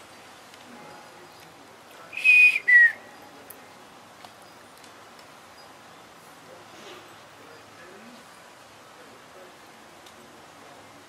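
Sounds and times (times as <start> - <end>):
high-pitched whistles: 2.2 - 3.3.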